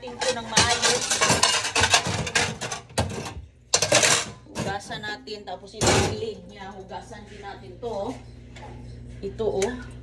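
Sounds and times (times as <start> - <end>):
metal kitchenware clinking: 0.0 - 5.2.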